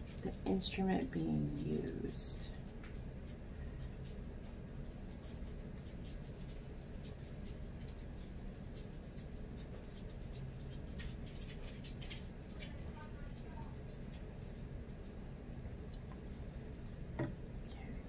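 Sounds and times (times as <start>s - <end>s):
low steady hum: 0.0s - 18.0s.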